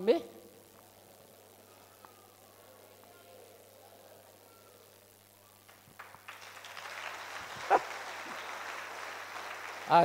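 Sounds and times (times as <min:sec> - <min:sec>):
congregation applauding: 0:05.7 - 0:10.0
congregation calling out: 0:06.3 - 0:10.0.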